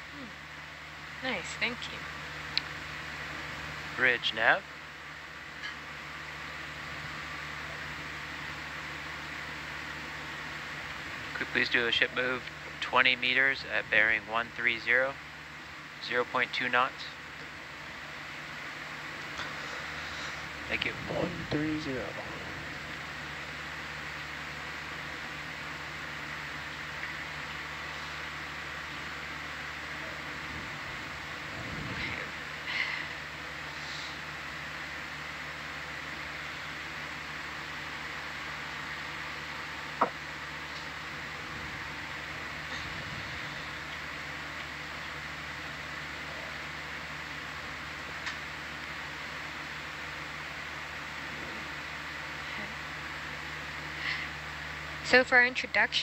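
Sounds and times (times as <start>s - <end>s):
equipment hum with high whine: 0.0s - 56.0s.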